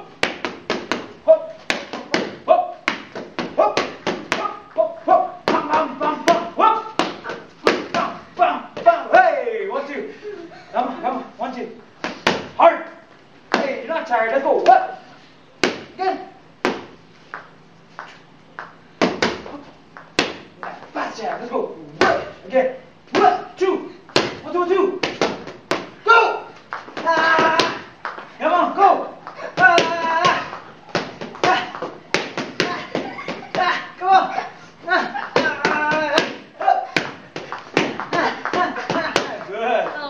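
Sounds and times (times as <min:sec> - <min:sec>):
boxing gloves hitting mitts: 0:00.0 - 0:09.0, 0:12.0 - 0:12.6, 0:13.5 - 0:13.9, 0:15.6 - 0:17.0, 0:18.0 - 0:22.4, 0:23.1 - 0:23.5, 0:24.1 - 0:28.2, 0:29.2 - 0:40.0
voices talking: 0:03.6 - 0:11.8.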